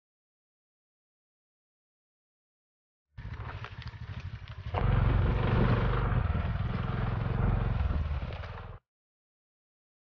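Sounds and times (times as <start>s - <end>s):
motorcycle engine under load: 3.2s - 8.8s.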